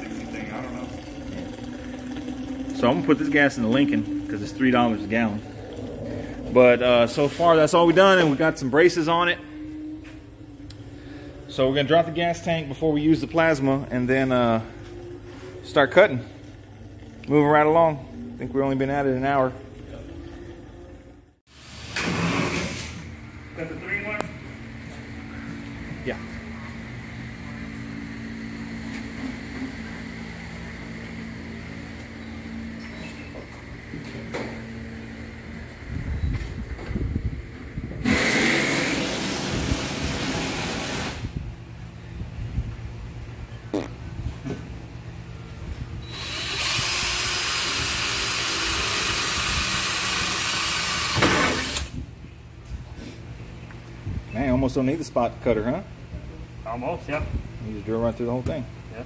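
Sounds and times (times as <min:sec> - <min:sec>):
low steady hum: 0:00.0 - 0:21.4
thin high whine: 0:00.0 - 0:21.4
cordless drill boring through steel: 0:46.1 - 0:51.9.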